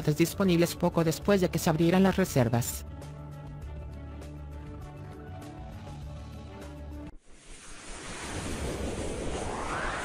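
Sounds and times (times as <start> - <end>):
whoosh rush of noise: 7.2 - 10.0
rising sweep: 7.3 - 10.0.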